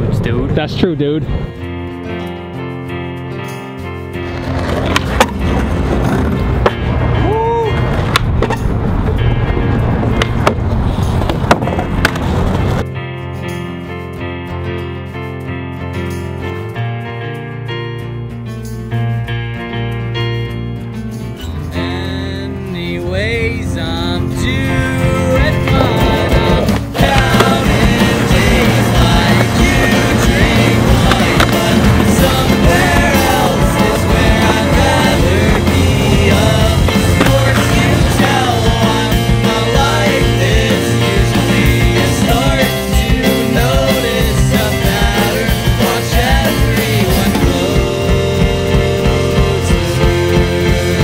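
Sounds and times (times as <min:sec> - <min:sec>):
piano music: 0:01.4 - 0:51.0
skateboard wheels rolling on pavement: 0:04.0 - 0:12.9, 0:22.7 - 0:51.0
skateboard clacking onto paving: 0:04.3 - 0:06.8
skateboard clacks: 0:04.3 - 0:06.8, 0:11.2 - 0:12.8, 0:25.6 - 0:38.5
skateboard grinding on wooden ledge: 0:04.3 - 0:06.8.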